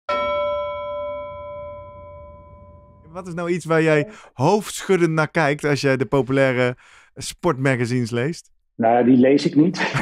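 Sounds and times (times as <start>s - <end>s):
metallic bell chime ringing: 0.1s - 3.2s.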